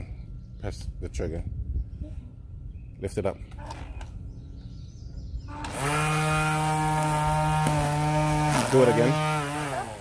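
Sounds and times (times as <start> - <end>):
electric string trimmer motor whine: 5.5 - 10.0.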